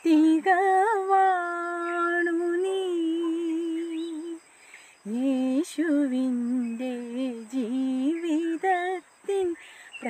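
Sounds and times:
woman singing unaccompanied: 0.0 - 10.0.

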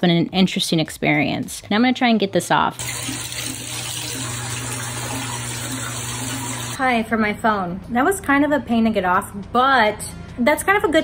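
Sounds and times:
shower water running onto bathtub: 2.8 - 6.8.

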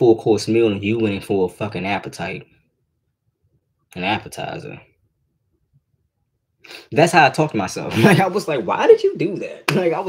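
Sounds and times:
man speaking: 0.0 - 2.6, 3.9 - 4.9, 6.9 - 10.0.

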